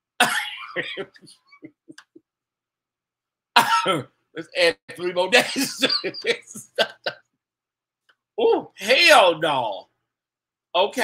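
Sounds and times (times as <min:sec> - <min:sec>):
man laughing loudly: 0:00.2 - 0:02.2, 0:05.2 - 0:07.2.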